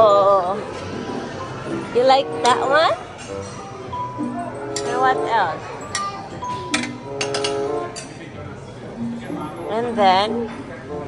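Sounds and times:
metal tongs clinking on tray: 0:04.7 - 0:05.2, 0:05.9 - 0:08.2.

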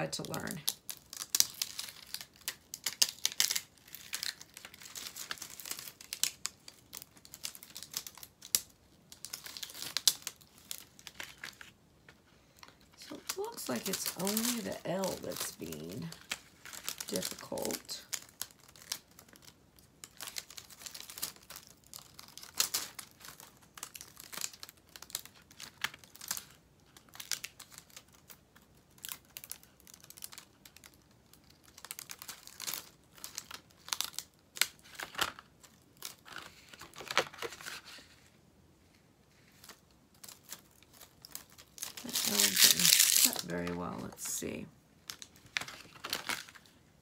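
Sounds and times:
aluminium foil crinkling: 0:00.0 - 0:46.8.

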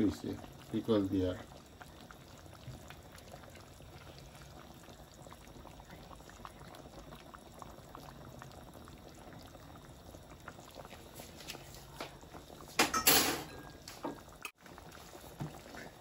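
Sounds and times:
curry bubbling in a pot: 0:00.0 - 0:16.0.

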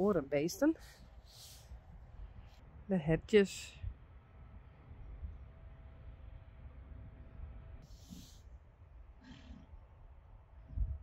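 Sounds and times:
wind rumble on microphone: 0:01.7 - 0:11.0.

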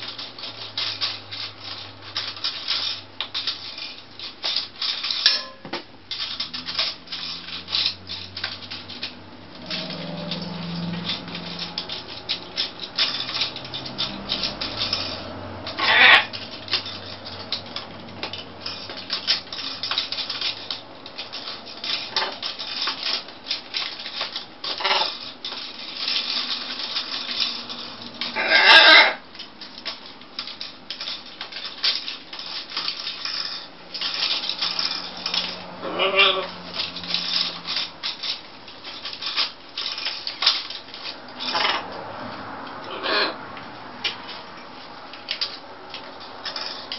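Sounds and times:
beaks clicking and scraping plastic: 0:00.0 - 0:46.9
loud parrot calls: 0:15.8 - 0:16.4, 0:24.8 - 0:25.1, 0:28.3 - 0:29.2, 0:35.8 - 0:36.6, 0:41.5 - 0:41.8, 0:42.9 - 0:43.4.

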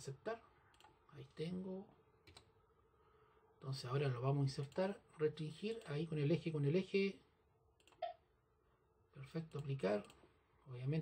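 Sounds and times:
computer mouse clicks: 0:00.7 - 0:01.0, 0:02.2 - 0:02.5, 0:07.8 - 0:08.1, 0:09.5 - 0:10.2.

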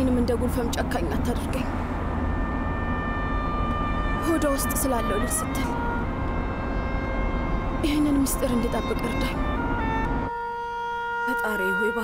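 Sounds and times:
car engine rumble: 0:00.0 - 0:11.1
road noise: 0:00.0 - 0:12.0
sustained high tones: 0:02.0 - 0:12.0.

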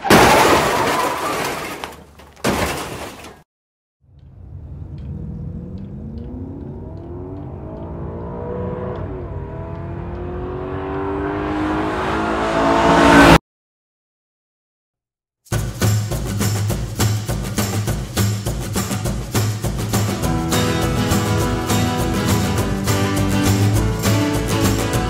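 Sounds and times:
car engine accelerating: 0:04.1 - 0:13.4, 0:20.0 - 0:25.0.

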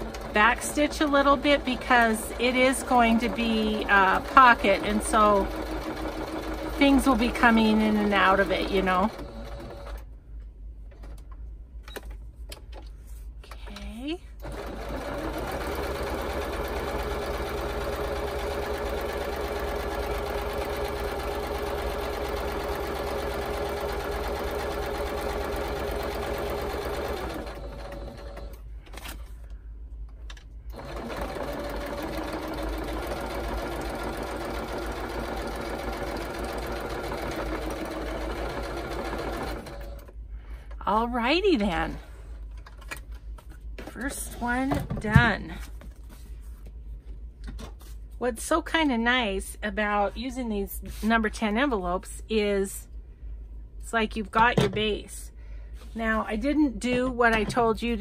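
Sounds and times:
sewing machine stitching paper: 0:00.0 - 0:10.0, 0:14.4 - 0:28.6, 0:30.7 - 0:40.1.

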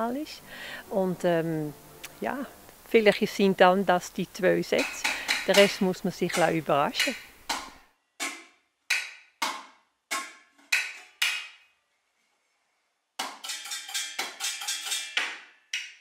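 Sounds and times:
wooden spoon striking metal pots: 0:04.6 - 0:11.6, 0:13.2 - 0:15.4.

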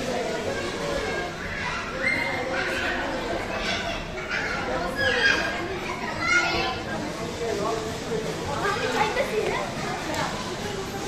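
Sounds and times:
children chatter: 0:00.0 - 0:11.0.

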